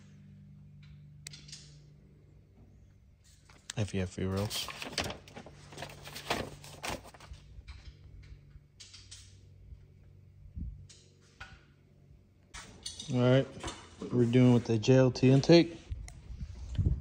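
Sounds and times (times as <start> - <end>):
paper pages rustling: 3.5 - 7.5.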